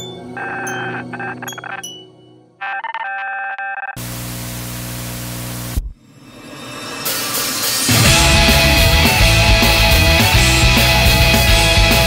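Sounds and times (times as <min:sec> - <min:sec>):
bell-like keyboard notes: 0:00.0 - 0:02.6
loud burst of static: 0:04.0 - 0:05.9
band playing: 0:07.8 - 0:12.0.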